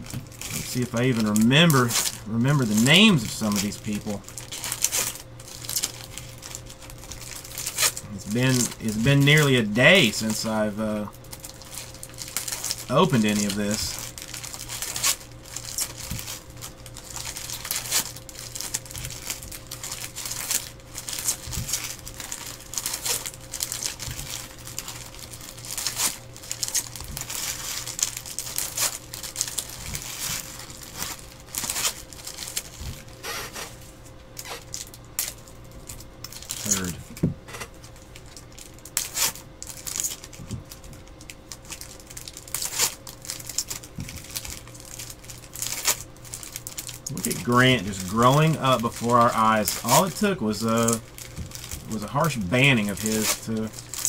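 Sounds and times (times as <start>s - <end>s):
faint steady hum: 0.0s - 54.0s
foil wrappers crinkling and tearing: 0.0s - 54.0s
cards rustling and flicking: 36.4s - 38.0s, 47.0s - 54.0s.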